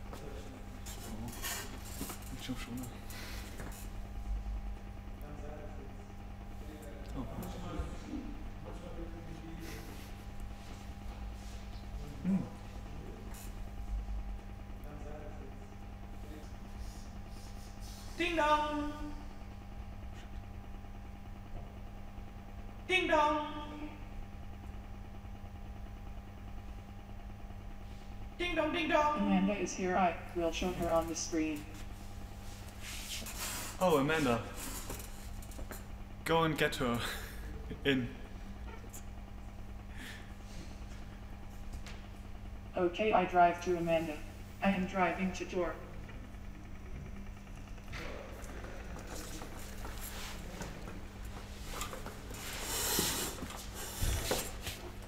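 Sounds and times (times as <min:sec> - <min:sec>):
steady low hum: 0:00.0 - 0:55.0
robot motors humming: 0:06.2 - 0:14.8, 0:42.3 - 0:55.0.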